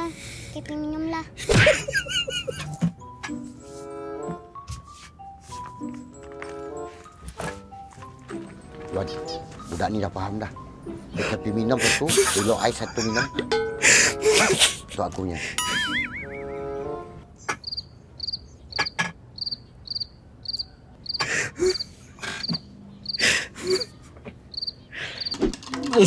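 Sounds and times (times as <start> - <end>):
cricket chirping: 17.5 - 23.2, 24.5 - 25.4.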